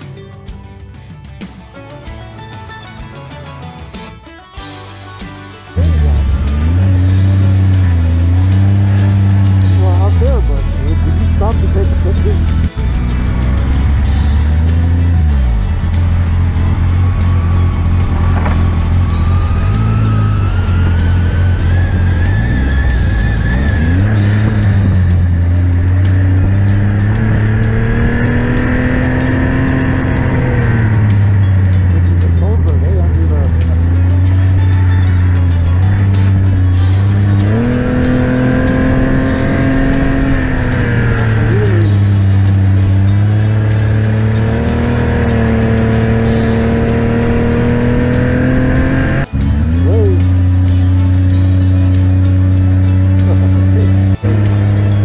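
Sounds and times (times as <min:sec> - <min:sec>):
snowmobile engine revving: 0:05.8 - 0:55.0.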